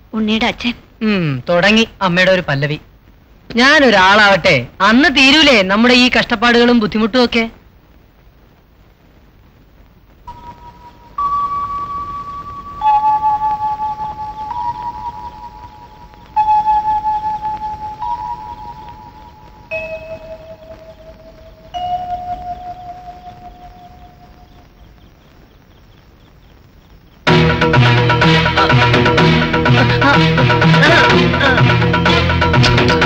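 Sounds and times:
slow chime-like melody: 0:10.3 - 0:24.4.

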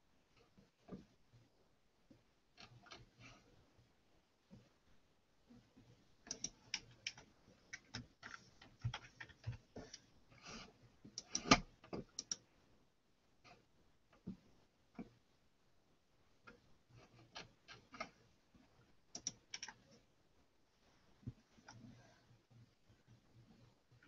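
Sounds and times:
computer keys typing: 0:11.2 - 0:12.4, 0:19.1 - 0:19.8.

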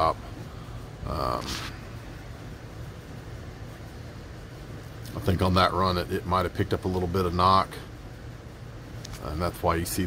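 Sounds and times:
low room hum: 0:00.0 - 0:10.0
soft hiss: 0:00.0 - 0:10.0.

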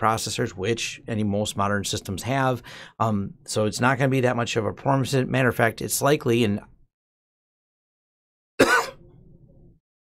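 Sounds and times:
man clearing his throat: 0:08.6 - 0:09.0.

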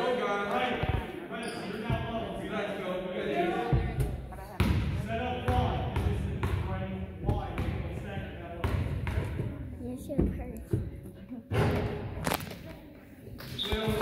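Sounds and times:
chatter of voices: 0:00.0 - 0:05.4.

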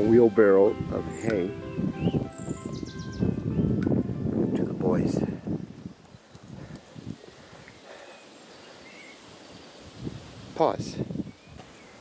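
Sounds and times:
bird chirps: 0:01.1 - 0:03.5, 0:07.6 - 0:09.8.

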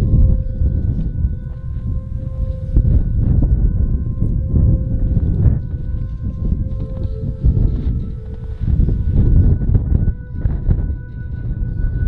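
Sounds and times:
faint steady tones: 0:00.0 - 0:12.0
wind buffeting microphone: 0:00.0 - 0:12.0.

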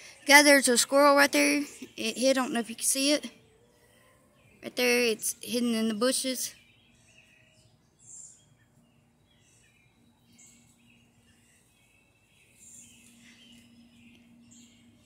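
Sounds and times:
bird chirps: 0:00.0 - 0:15.0.

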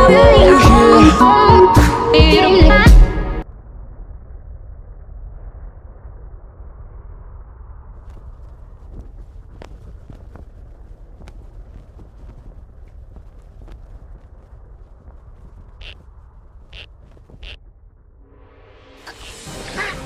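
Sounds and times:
low steady rumbling: 0:02.9 - 0:19.0
faint clicks: 0:08.0 - 0:17.6.

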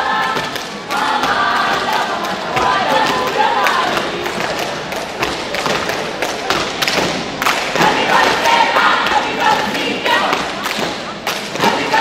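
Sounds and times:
people clapping: 0:00.0 - 0:12.0.

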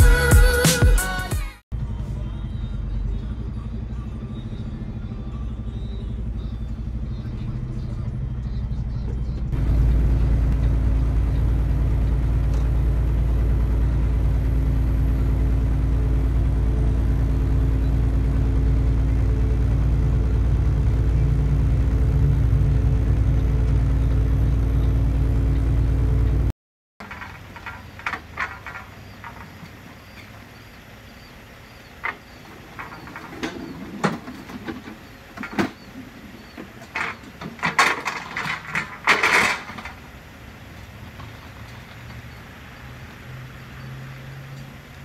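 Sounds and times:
truck engine and road rumble: 0:00.0 - 0:45.0.

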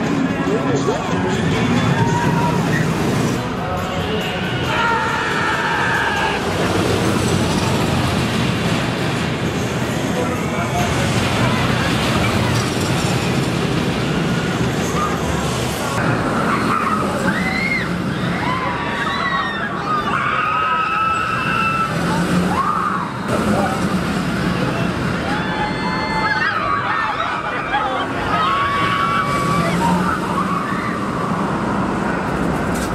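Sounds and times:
roller coaster track rush: 0:00.0 - 0:32.9
riders screaming: 0:01.7 - 0:03.1, 0:04.7 - 0:07.3, 0:16.3 - 0:23.6, 0:24.9 - 0:31.7.

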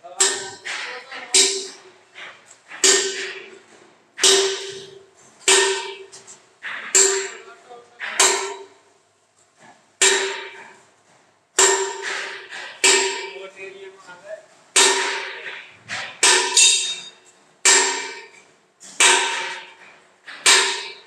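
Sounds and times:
hammer striking metal drum: 0:00.1 - 0:03.6, 0:04.2 - 0:08.8, 0:10.0 - 0:10.8, 0:11.6 - 0:13.5, 0:14.8 - 0:21.0.

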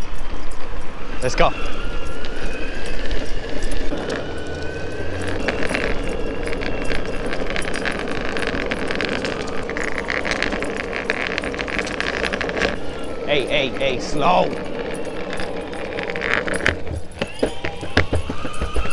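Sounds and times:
electric motor whine: 0:00.0 - 0:18.9
fast rattle of clicks: 0:00.0 - 0:18.9
wheels rumbling on pavement: 0:00.0 - 0:18.9.

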